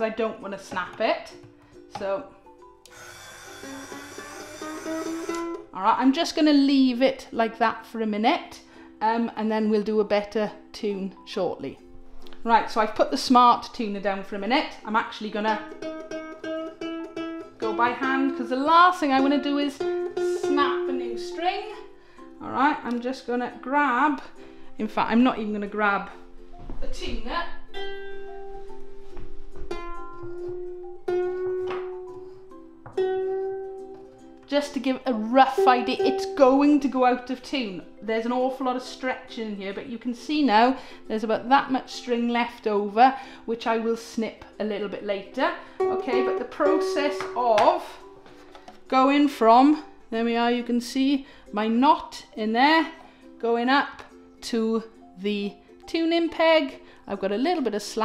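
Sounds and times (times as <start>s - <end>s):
motorised tuner whirring: 2.9s - 5.6s
ukulele string plucked: 15.4s - 21.7s, 29.6s - 34.2s, 35.3s - 36.8s, 45.8s - 47.9s
ukulele string ringing: 35.5s - 36.8s, 45.8s - 47.9s.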